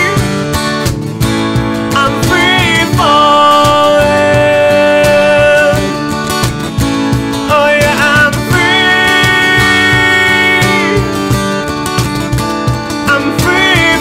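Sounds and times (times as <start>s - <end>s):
man singing: 0.0s - 0.6s, 1.8s - 11.6s, 12.9s - 14.0s
acoustic guitar strumming: 0.0s - 14.0s
cajon beats: 0.0s - 14.0s.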